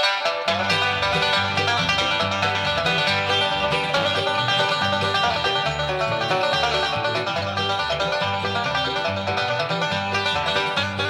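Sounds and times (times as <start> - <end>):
guitar: 0.0 - 11.0
picked banjo: 0.0 - 11.0
steady bass line: 0.5 - 11.0.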